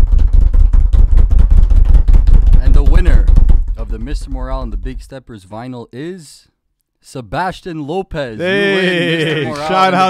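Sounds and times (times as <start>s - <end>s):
rapid drum roll: 0.0s - 5.1s.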